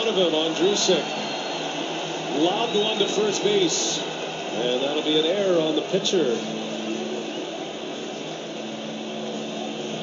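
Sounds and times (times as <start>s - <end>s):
stadium crowd noise from tv: 0.0s - 10.0s.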